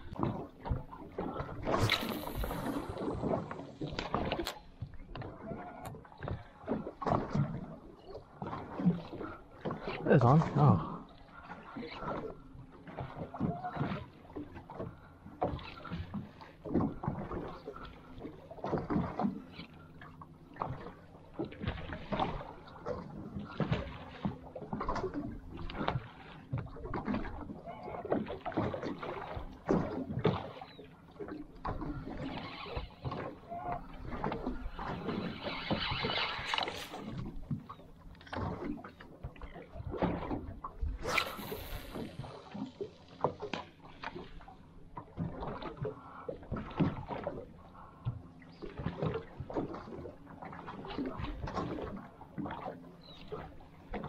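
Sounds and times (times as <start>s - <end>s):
water slapping boat hull: 0.0s - 54.0s.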